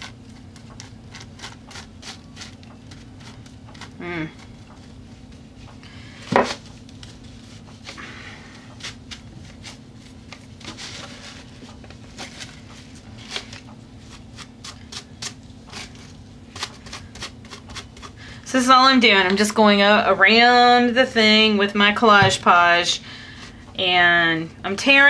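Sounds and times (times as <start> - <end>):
low steady hum: 0.0 - 25.0
tissue paper crinkling: 8.8 - 14.5.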